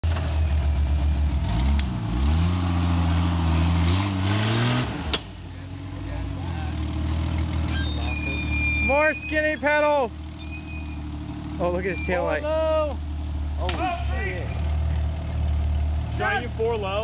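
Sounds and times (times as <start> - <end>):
car engine revving under load: 0.0 - 17.0.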